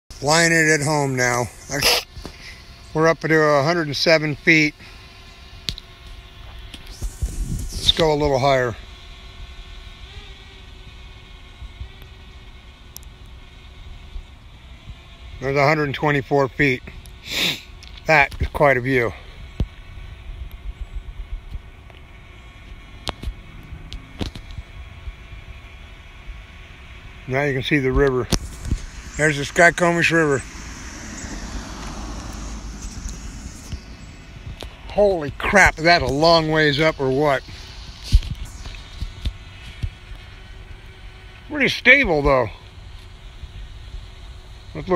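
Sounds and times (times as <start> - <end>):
drone propellers humming: 0.1 - 44.9.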